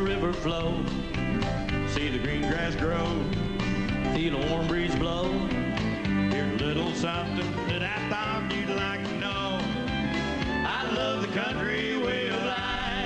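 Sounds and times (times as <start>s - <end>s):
man singing: 0.0s - 1.1s, 1.8s - 5.6s, 6.2s - 9.9s, 10.5s - 13.0s
country band playing guitars: 0.0s - 13.0s.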